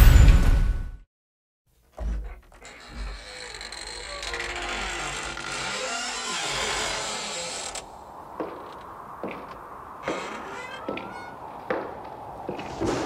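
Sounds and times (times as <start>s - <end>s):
long drawn-out creak: 2.0s - 12.1s.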